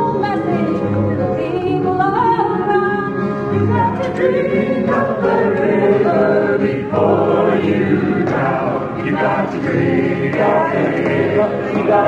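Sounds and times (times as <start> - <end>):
group of voices singing: 3.6 - 12.0.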